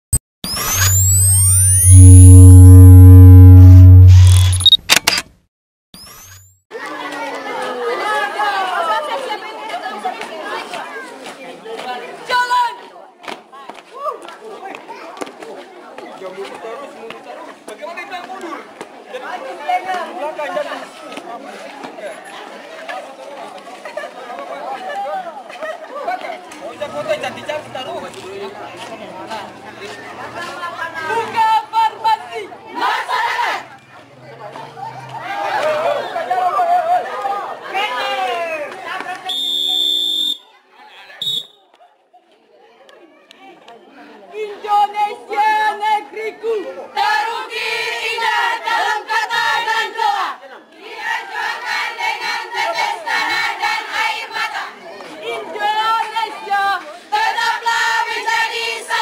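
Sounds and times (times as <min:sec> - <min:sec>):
loud low drone: 0:00.8 - 0:04.6
camera shutter clicks: 0:04.2 - 0:05.3
outdoor crowd chatter: 0:06.7 - 0:59.0.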